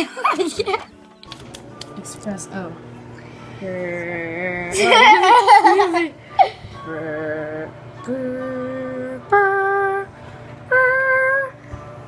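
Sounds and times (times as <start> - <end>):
microwave oven humming: 0.0 - 12.0.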